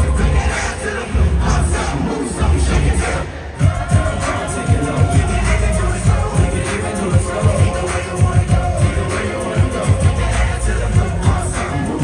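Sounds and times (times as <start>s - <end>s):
hip-hop music with heavy bass: 0.0s - 12.0s.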